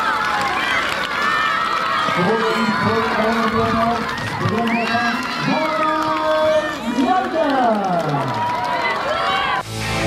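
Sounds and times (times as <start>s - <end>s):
people shouting and calling: 0.0s - 9.7s.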